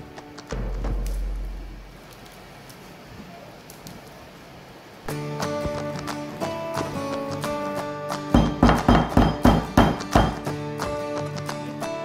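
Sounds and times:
instrumental background music: 0:05.1 - 0:12.0
stick pounding in clay pot: 0:08.4 - 0:10.5.

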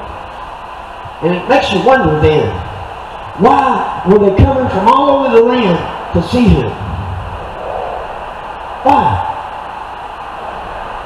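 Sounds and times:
steady background noise: 0:00.0 - 0:11.0
man speaking: 0:03.4 - 0:06.8, 0:08.8 - 0:09.4.

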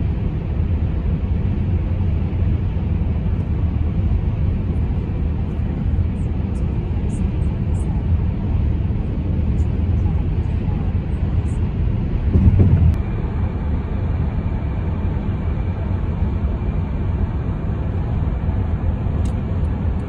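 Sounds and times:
car road and engine rumble: 0:00.0 - 0:20.0.

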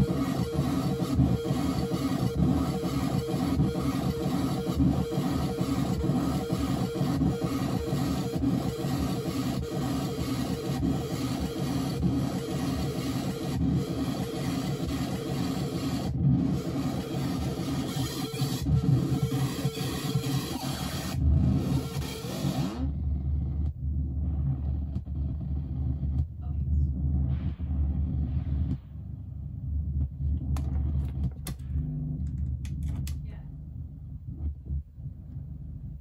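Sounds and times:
distorted synthesizer noise: 0:00.0 - 0:33.0, 0:33.6 - 0:36.0
low droning rumble: 0:22.9 - 0:36.0
patch cable clicks and crackles: 0:30.3 - 0:33.3.

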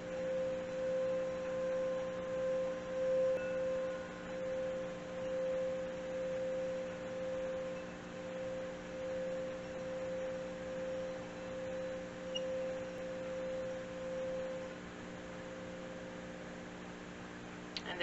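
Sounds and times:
singing bowl ringing tone: 0:00.0 - 0:17.2.

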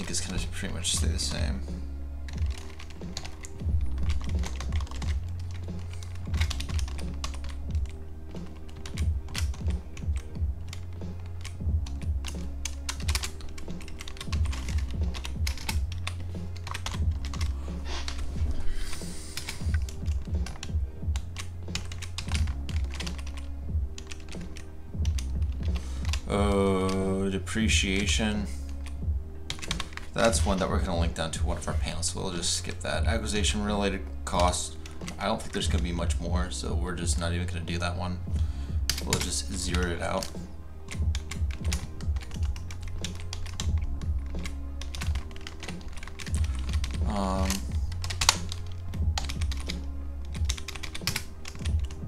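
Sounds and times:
background music with bass line: 0:00.0 - 0:52.0
computer keyboard typing: 0:02.3 - 0:31.4, 0:34.3 - 0:36.2, 0:38.8 - 0:52.0.

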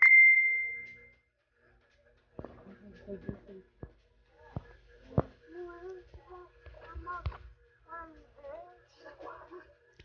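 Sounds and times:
phone notification ding: 0:00.0 - 0:01.1.

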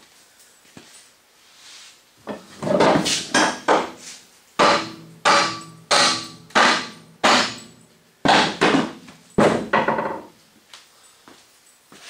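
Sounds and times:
sledgehammer striking steel: 0:04.6 - 0:09.7.

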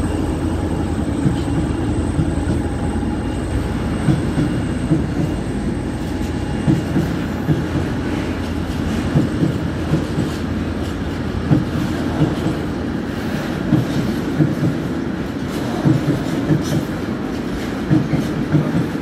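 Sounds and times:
train wheels rumbling on track: 0:00.0 - 0:19.0.

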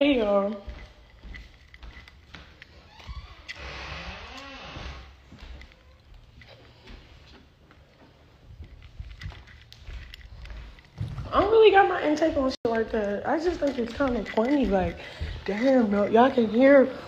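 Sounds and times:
phone handling rustles and clicks: 0:13.0 - 0:15.8.

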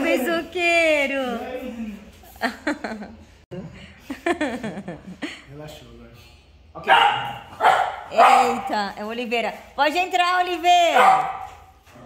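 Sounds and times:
small dog barking: 0:06.8 - 0:08.8, 0:10.9 - 0:11.6.

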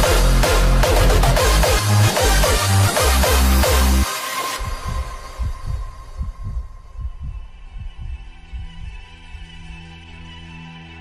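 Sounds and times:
hardstyle track: 0:00.0 - 0:11.0
low deep thuds: 0:04.6 - 0:09.8.

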